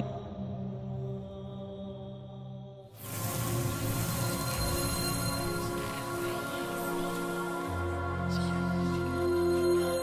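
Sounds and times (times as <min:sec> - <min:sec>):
low sustained drone music: 0:00.0 - 0:10.0.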